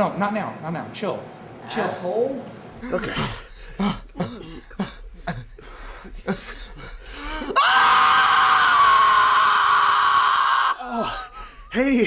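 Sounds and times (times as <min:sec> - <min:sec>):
person screaming: 0:07.4 - 0:11.3.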